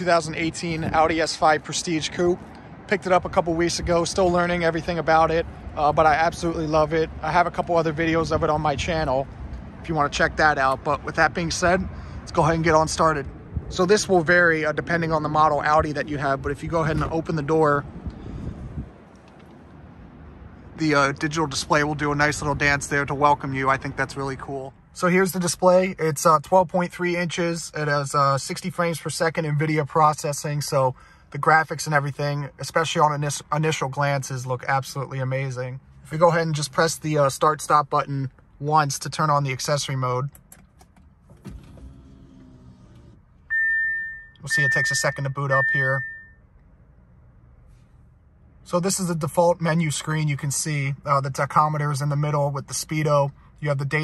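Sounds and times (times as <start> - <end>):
faint outdoor background: 0.0 - 54.0
wind rumble on microphone: 15.7 - 19.1
dashboard chime beep: 43.5 - 46.4.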